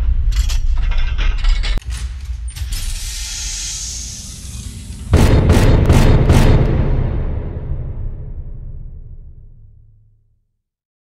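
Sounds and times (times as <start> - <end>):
low rumble: 4.8 - 10.1.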